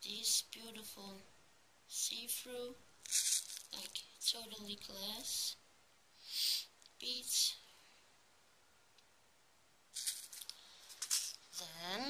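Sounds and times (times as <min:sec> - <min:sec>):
plastic bead packets rattling: 0:03.0 - 0:04.0, 0:10.0 - 0:11.4.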